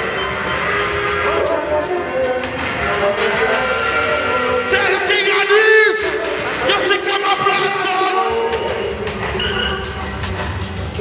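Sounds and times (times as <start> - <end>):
held horn-like tones: 0.0 - 10.3
heavy bass: 0.0 - 11.0
loud reggae music: 0.0 - 11.0.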